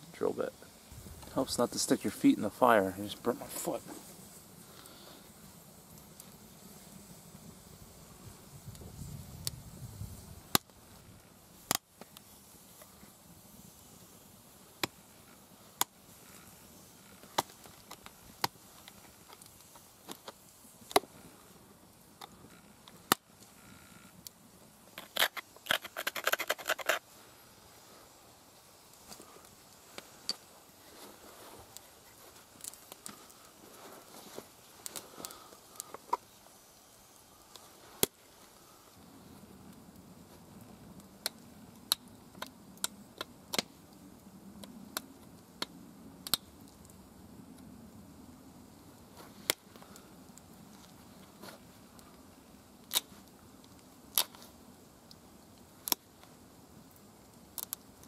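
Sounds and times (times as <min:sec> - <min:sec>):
flint flakes snapping off: 0:24.9 - 0:27.0, 0:52.9 - 0:53.2, 0:54.1 - 0:54.4.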